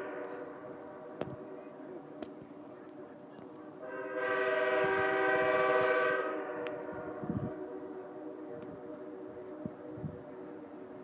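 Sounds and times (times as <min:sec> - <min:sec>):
locomotive horn blast: 0:00.0 - 0:00.7, 0:03.8 - 0:10.0
train drone: 0:00.0 - 0:11.0.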